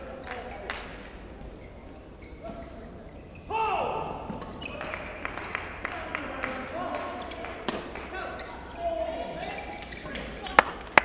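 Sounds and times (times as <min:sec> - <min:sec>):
rackets striking shuttlecock: 0:07.2 - 0:08.6.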